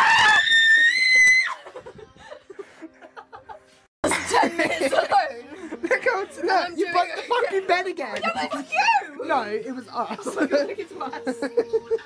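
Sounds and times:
girl screaming: 0.0s - 1.6s.

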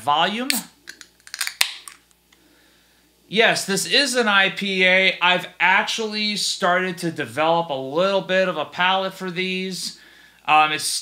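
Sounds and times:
can cracking open: 0.5s - 2.1s.

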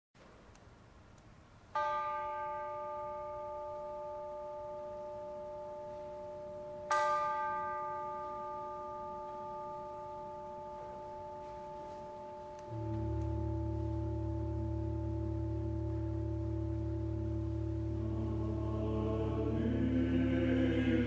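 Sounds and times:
bell ringing: 1.8s - 18.5s.

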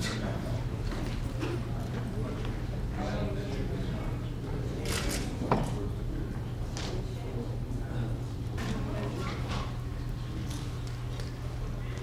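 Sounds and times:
low murmured voices: 0.0s - 12.0s.

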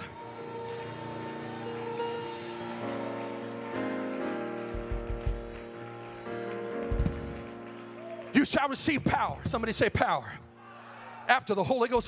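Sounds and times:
keyboard sustaining chords: 0.0s - 10.6s
person preaching: 8.2s - 10.5s, 11.2s - 12.0s.

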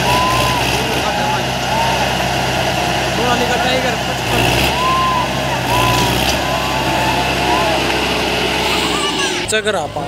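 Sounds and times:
crowd voices: 0.0s - 10.0s
tractor diesel engine under load: 0.0s - 10.0s.

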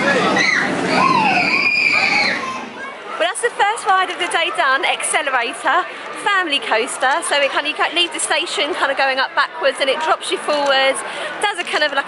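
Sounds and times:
riders screaming: 0.0s - 2.8s
roller coaster passing: 0.0s - 4.7s
crowd chatter: 0.0s - 12.0s.

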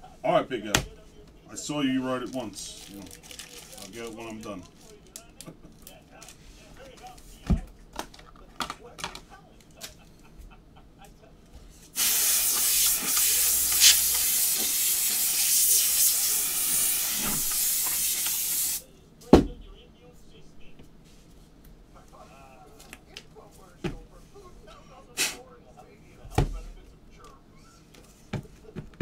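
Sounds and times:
aerosol spray can hissing: 12.0s - 18.8s.

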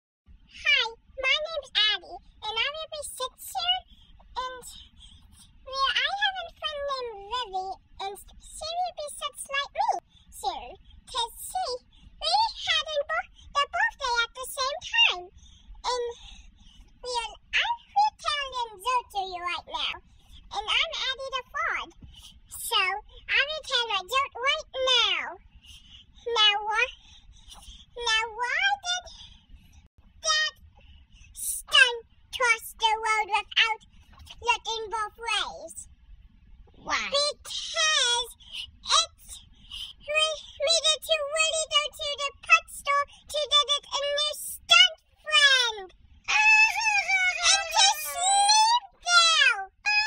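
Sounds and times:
high-pitched cartoon voice: 0.6s - 3.8s, 4.4s - 4.8s, 5.7s - 15.3s, 15.9s - 16.2s, 17.1s - 21.9s, 26.3s - 29.2s, 30.2s - 30.5s, 31.4s - 35.8s, 36.8s - 39.4s, 40.0s - 50.0s
high-pitched wordless vocal calls: 46.3s - 49.0s.

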